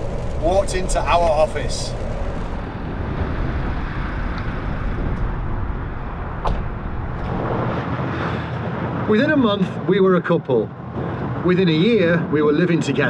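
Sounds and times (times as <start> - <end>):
van engine and road rumble: 0.0 - 13.0.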